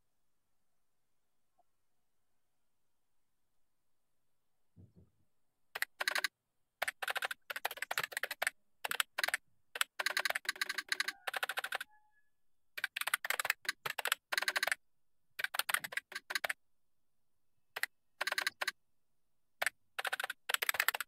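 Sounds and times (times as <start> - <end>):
computer keyboard typing: 5.8 - 12.0, 12.8 - 14.8, 15.4 - 16.6, 17.8 - 18.8, 19.6 - 21.0.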